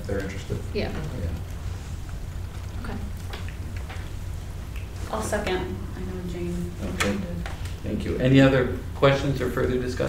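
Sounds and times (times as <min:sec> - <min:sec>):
soft ticks and rustles: 0:00.0 - 0:08.3
low hum: 0:00.0 - 0:10.0.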